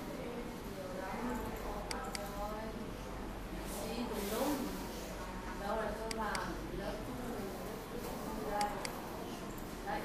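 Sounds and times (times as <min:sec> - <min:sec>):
computer mouse clicks: 0:01.4 - 0:02.4, 0:06.1 - 0:06.5, 0:08.5 - 0:09.6.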